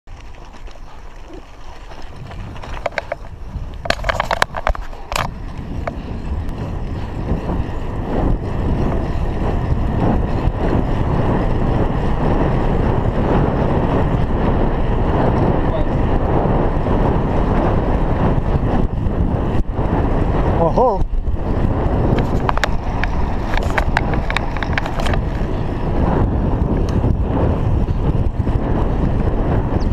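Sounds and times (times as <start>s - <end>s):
wind rushing over microphone: 0.1s - 29.9s.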